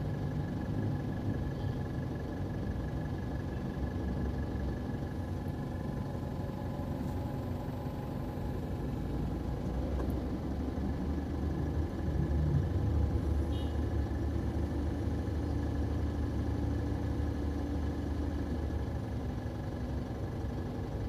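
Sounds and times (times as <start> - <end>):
car rumble inside cabin: 0.0 - 21.0.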